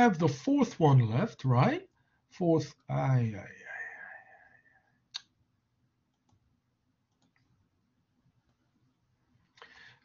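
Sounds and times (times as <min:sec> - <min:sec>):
computer mouse click: 0:06.1 - 0:06.4, 0:07.1 - 0:07.5.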